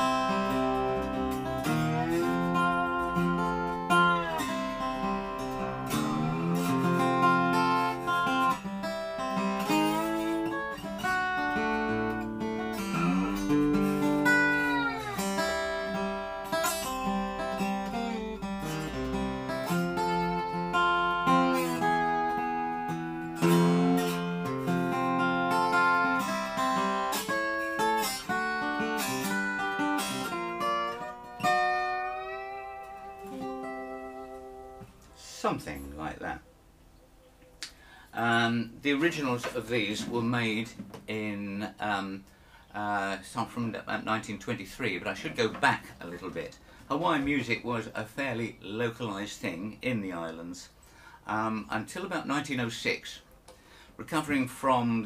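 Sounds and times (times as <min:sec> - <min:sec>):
lap steel guitar sliding notes: 0:00.0 - 0:36.0.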